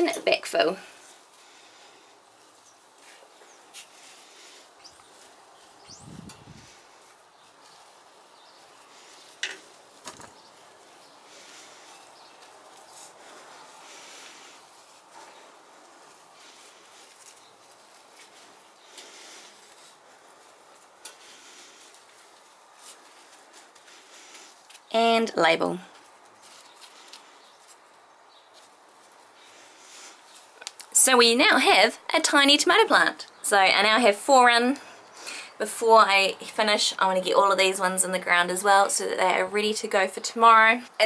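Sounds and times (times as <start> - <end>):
hands rustling soil: 0.0 - 41.0.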